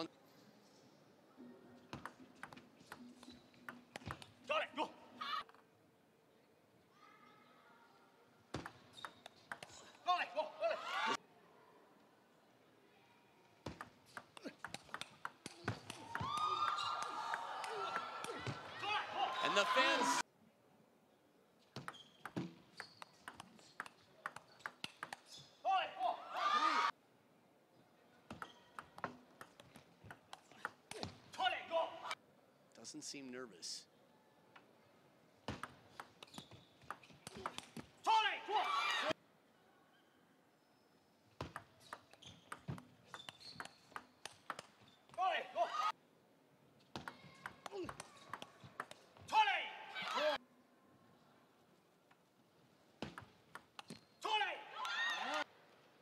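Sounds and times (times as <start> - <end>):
table tennis ball clicking: 21.8 - 25.3, 41.5 - 44.7, 47.0 - 49.0.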